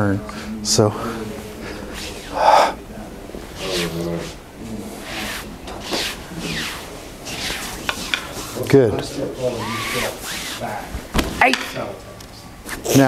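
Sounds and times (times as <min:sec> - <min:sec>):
low indistinct voices: 0:00.0 - 0:13.0.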